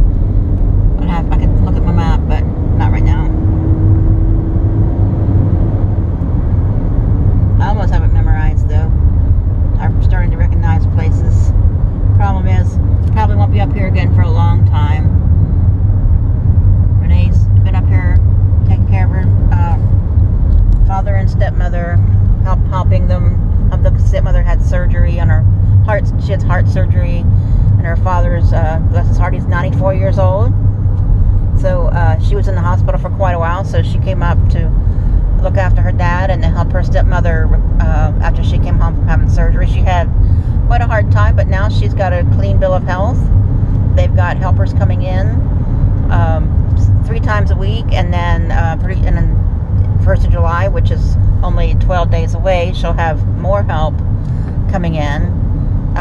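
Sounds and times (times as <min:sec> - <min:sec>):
car engine and road rumble: 0:00.0 - 0:56.0
person talking: 0:01.0 - 0:03.3, 0:07.6 - 0:08.9, 0:09.8 - 0:11.5, 0:12.2 - 0:15.1, 0:17.0 - 0:19.8, 0:20.8 - 0:30.5, 0:31.6 - 0:34.7, 0:35.4 - 0:40.1, 0:40.7 - 0:43.3, 0:44.0 - 0:45.4, 0:46.1 - 0:49.4, 0:50.0 - 0:53.9, 0:54.7 - 0:55.3.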